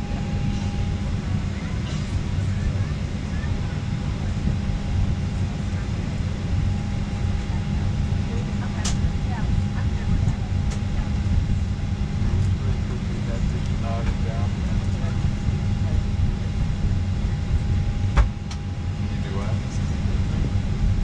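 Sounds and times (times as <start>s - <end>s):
airliner cabin low rumble: 0.0s - 21.0s
faint voices: 0.0s - 21.0s.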